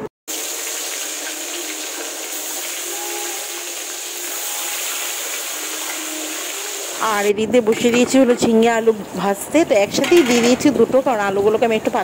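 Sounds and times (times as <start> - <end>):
fish sizzling in hot oil: 0.3 - 7.3.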